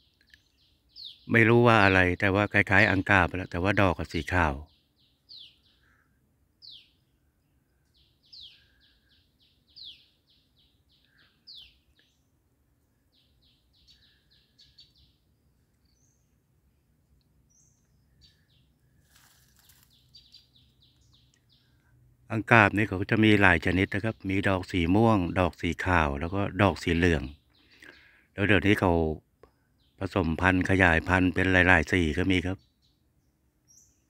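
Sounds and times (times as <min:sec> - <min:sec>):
faint bird chirps: 0:00.0 - 0:34.0.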